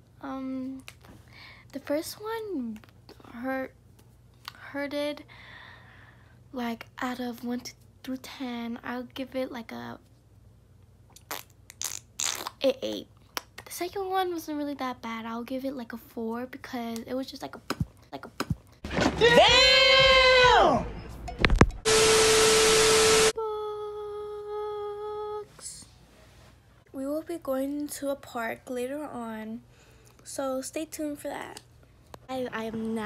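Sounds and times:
static hiss burst: 21.8s - 23.3s.

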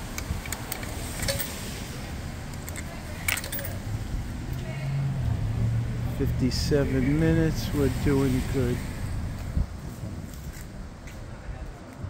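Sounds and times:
coins clinking into parking meter: 0.2s - 1.7s, 2.4s - 3.9s.

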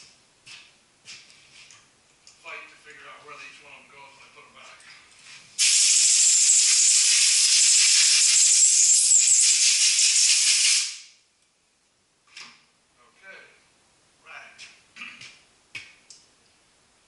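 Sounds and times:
air blow gun hissing: 5.6s - 11.1s.

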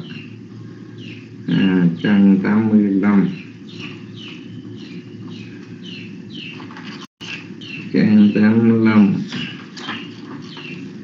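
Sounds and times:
small bird chirping: 0.0s - 11.0s
steady low hum: 0.0s - 11.0s.

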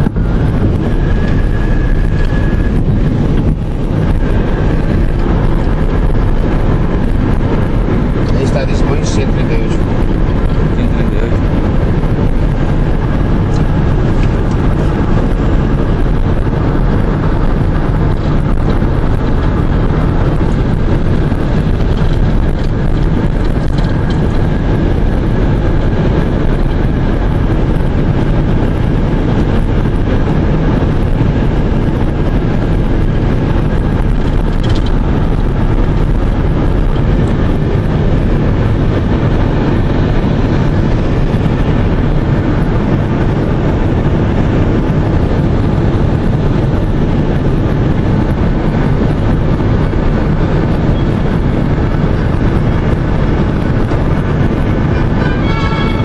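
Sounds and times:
car road noise from inside: 0.0s - 56.0s.

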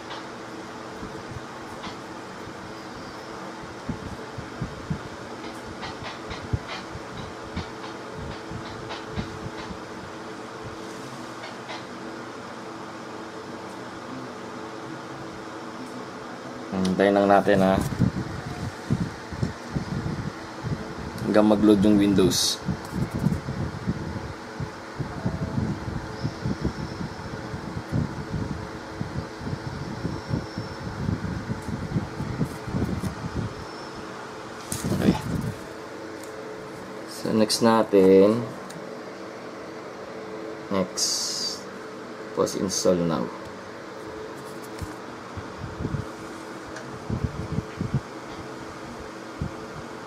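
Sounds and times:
fan-like whir: 0.0s - 50.0s.

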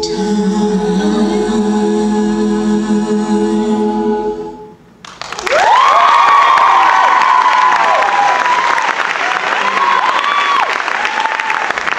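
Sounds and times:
audience applauding: 5.0s - 11.9s
high-pitched whoops and screams: 5.4s - 8.9s, 9.6s - 11.7s.

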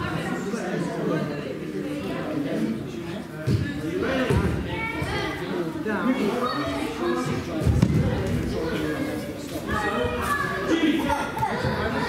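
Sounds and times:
background chatter echoing: 0.0s - 12.0s.

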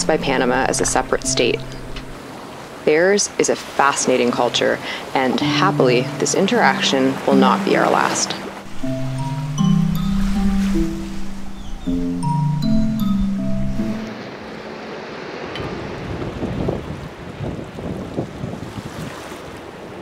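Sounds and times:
melodic music: 0.0s - 2.3s, 5.3s - 15.6s
sea wash: 0.0s - 20.0s
wind buffeting microphone: 15.4s - 20.0s.

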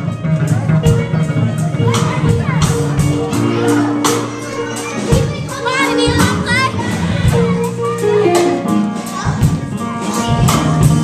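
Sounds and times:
live blues band: 0.0s - 11.0s
child's voice: 1.0s - 9.8s.

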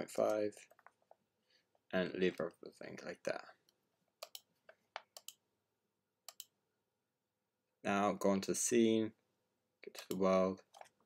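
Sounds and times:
computer mouse clicking: 4.2s - 5.4s, 6.3s - 6.6s.

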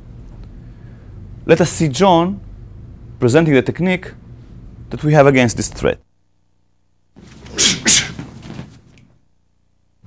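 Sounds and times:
person coughing: 7.5s - 8.3s.

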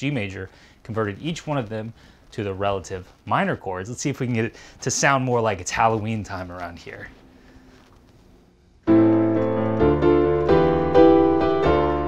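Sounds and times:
minor chords on digital piano: 8.9s - 12.0s.

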